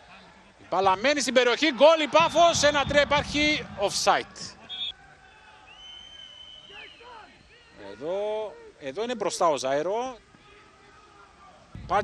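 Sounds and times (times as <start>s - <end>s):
referee's whistle: 2.1s - 3.2s, 4.6s - 5.0s, 5.7s - 7.6s.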